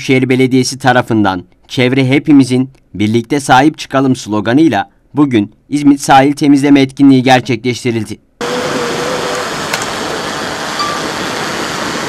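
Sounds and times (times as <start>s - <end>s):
rushing outdoor background noise: 8.4s - 12.0s
single click: 9.7s - 9.9s.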